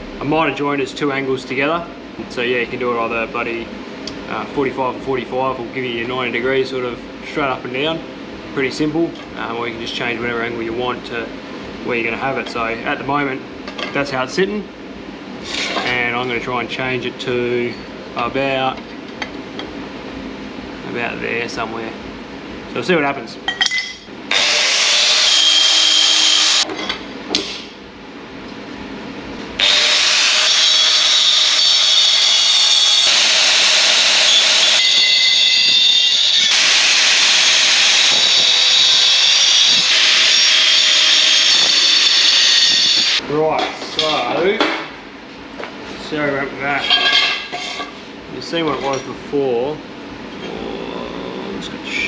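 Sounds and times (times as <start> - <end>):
angle grinder cutting metal tube: 24.3 - 26.7, 29.6 - 43.2.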